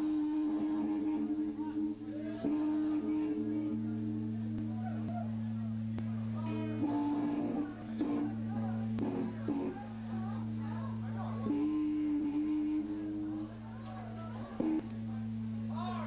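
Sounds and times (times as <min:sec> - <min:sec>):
electric guitar drone: 0:00.0 - 0:16.0
guitar strums: 0:00.8 - 0:15.9.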